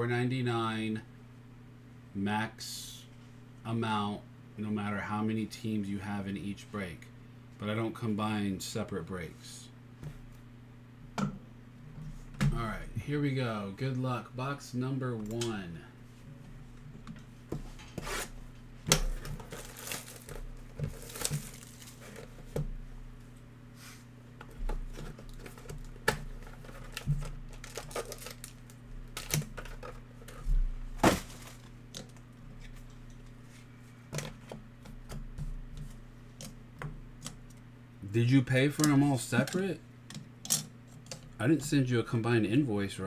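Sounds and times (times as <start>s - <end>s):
low electrical hum: 0.0s - 43.0s
plastic crinkling: 19.1s - 22.4s, 24.9s - 30.4s
cardboard ripping: 19.4s - 22.2s, 26.8s - 28.6s
sharp clicks and knocks of handling: 38.8s - 41.4s.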